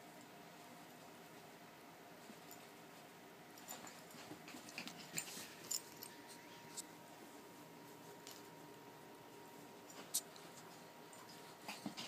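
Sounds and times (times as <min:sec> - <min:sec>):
faint small dog noises: 0:00.0 - 0:12.0
puppy scampering on carpet: 0:02.2 - 0:06.9, 0:07.6 - 0:12.0.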